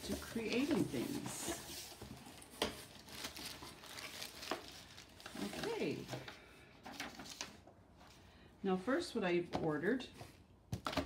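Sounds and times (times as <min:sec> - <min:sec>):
bubble wrap crinkling: 0:00.0 - 0:06.1.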